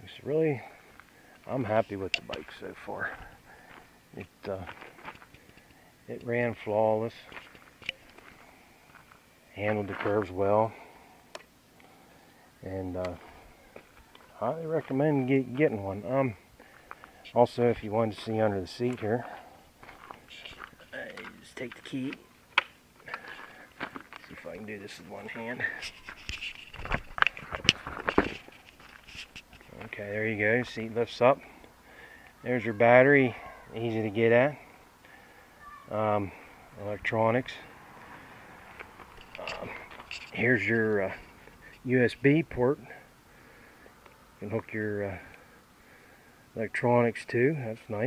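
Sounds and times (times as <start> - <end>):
footsteps on gravel: 4.5 - 5.7, 7.1 - 10.4, 13.0 - 15.0, 16.6 - 21.8, 23.0 - 30.0
rustling: 18.1 - 30.2, 38.1 - 41.9.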